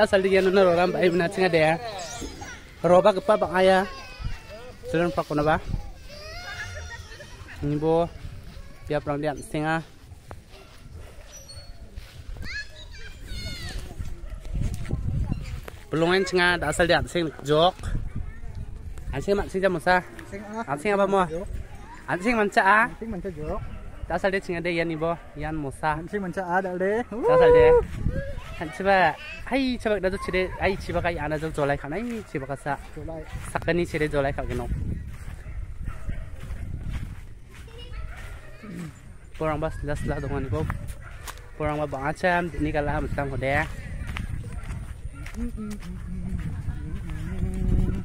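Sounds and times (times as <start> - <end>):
children calling and squealing: 0.0 - 25.2, 27.0 - 48.0
low microphone rumble: 43.0 - 48.0.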